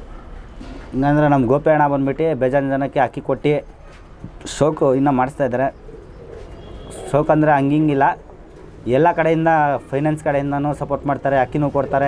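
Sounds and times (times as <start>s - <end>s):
pigeon cooing: 3.6s - 12.0s.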